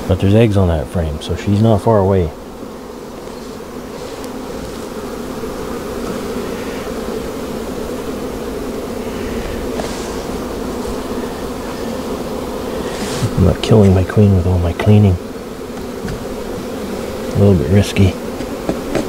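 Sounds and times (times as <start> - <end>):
honey bees buzzing: 0.0 - 19.0.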